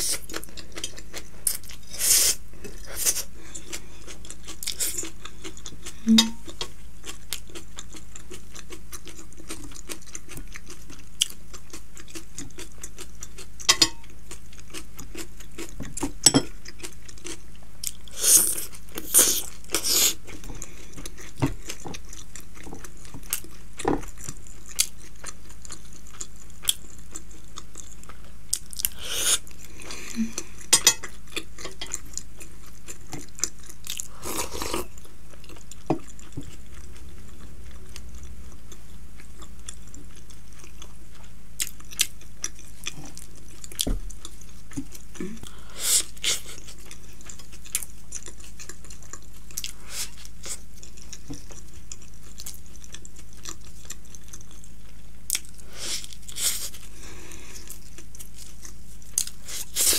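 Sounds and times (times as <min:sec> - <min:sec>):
faint low hum: 0:00.0 - 0:59.9
wet chewing and smacking: 0:02.6 - 0:57.0, 0:57.6 - 0:59.9
fork tapping glass bowl: 0:06.1 - 0:06.4, 0:13.7 - 0:14.0.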